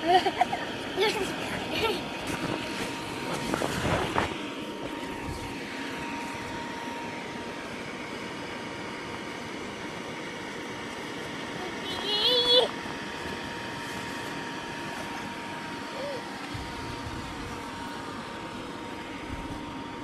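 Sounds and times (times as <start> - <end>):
child laughing: 0.0 - 2.2, 11.6 - 12.8, 15.9 - 16.4
air blower humming: 0.0 - 20.0.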